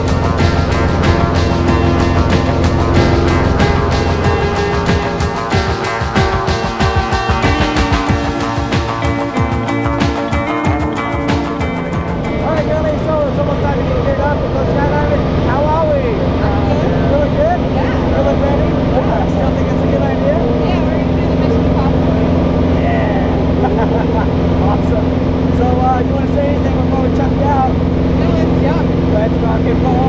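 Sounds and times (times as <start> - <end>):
indistinct voices: 0.0 - 30.0
propeller plane engine droning: 0.0 - 30.0.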